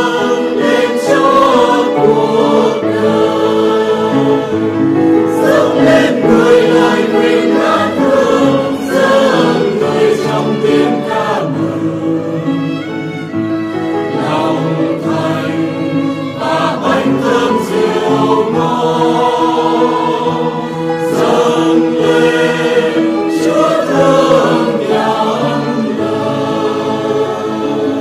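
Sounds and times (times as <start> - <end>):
choir singing a hymn: 0.0 - 28.0.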